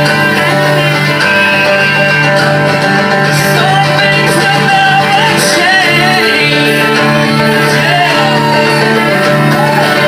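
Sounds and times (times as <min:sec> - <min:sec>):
fiddle melody: 0:00.0 - 0:10.0
strummed acoustic guitars: 0:00.0 - 0:10.0.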